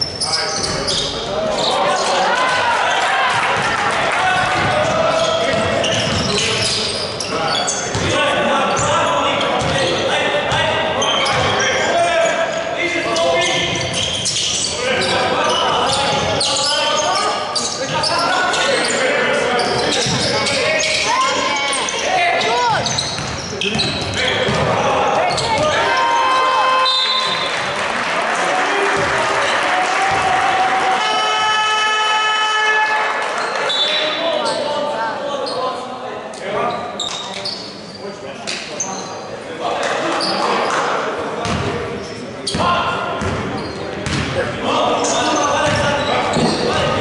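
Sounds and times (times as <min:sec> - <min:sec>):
shoe squeaks: 0:00.0 - 0:01.8, 0:05.1 - 0:26.2, 0:33.5 - 0:35.8, 0:36.5 - 0:39.2, 0:40.2 - 0:40.8, 0:43.5 - 0:44.0, 0:45.0 - 0:47.0
players and coaches shouting: 0:01.4 - 0:06.3, 0:14.7 - 0:23.0, 0:24.2 - 0:27.4, 0:28.3 - 0:35.2
basketball bouncing on wooden court: 0:04.4 - 0:06.5, 0:07.9 - 0:08.2, 0:09.6 - 0:09.8, 0:22.8 - 0:25.8, 0:41.4 - 0:41.7, 0:42.5 - 0:44.4, 0:45.6 - 0:47.0.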